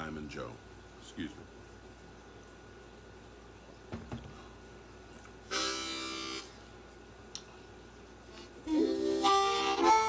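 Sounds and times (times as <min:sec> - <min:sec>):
faint knocks: 0:03.9 - 0:04.4
harmonica note: 0:05.5 - 0:06.6, 0:08.4 - 0:10.0.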